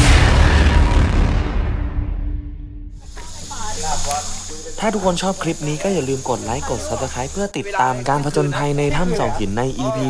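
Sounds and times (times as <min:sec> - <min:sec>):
high-pitched insect drone: 0:03.0 - 0:10.0
people talking: 0:03.0 - 0:10.0.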